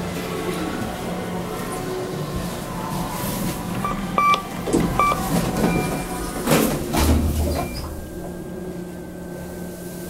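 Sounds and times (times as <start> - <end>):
elevator running hum: 0.0 - 10.0
short electronic beeps: 3.8 - 6.1.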